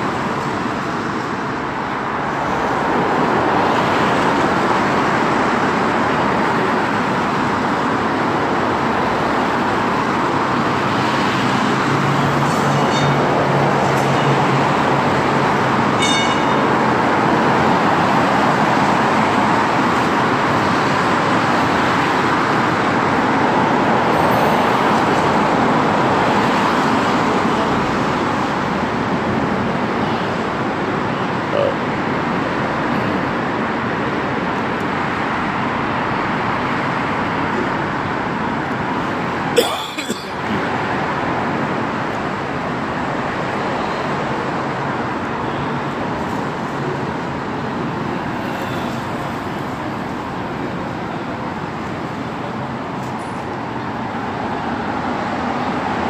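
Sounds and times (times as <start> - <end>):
cars passing on road: 0.0 - 56.0.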